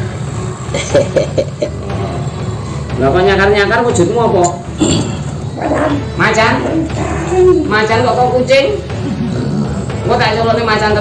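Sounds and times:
person chuckling: 0:00.7 - 0:01.8.

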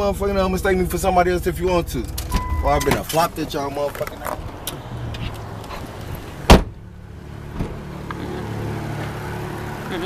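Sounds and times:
low car hum: 0:00.0 - 0:10.0
car door slamming: 0:06.3 - 0:06.9, 0:07.5 - 0:07.8.

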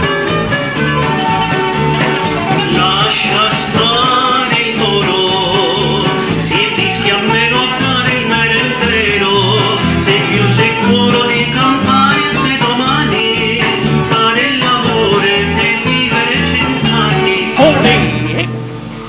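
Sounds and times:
band music with guitars: 0:00.0 - 0:19.0.

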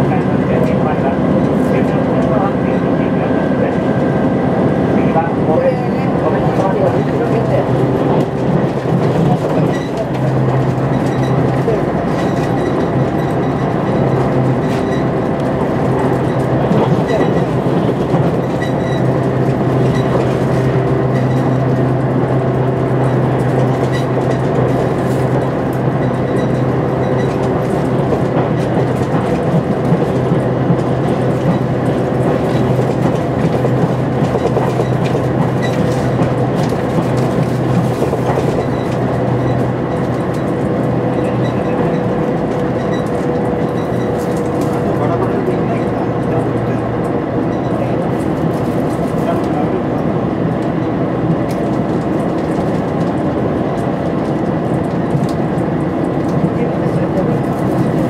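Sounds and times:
rail joint clicks: 0:00.0 - 0:58.0
train engine drone: 0:00.0 - 0:58.0
train wheels rolling on rails: 0:00.0 - 0:58.0.

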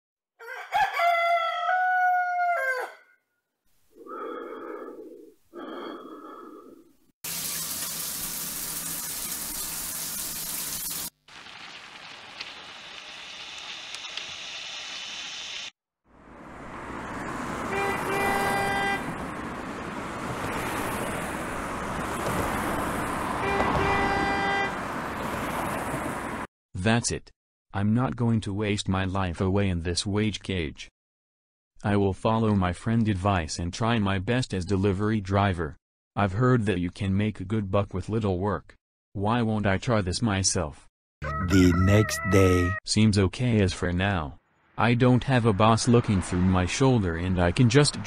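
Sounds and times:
rooster crowing: 0:00.4 - 0:03.2, 0:41.2 - 0:42.8
traffic-like rumble: 0:16.2 - 0:26.5
horn-like honks: 0:17.7 - 0:19.2, 0:23.4 - 0:24.8.

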